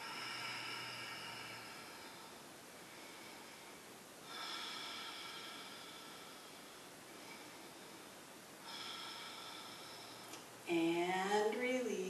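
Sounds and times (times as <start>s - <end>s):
slow breathing through nose: 0.0s - 10.4s.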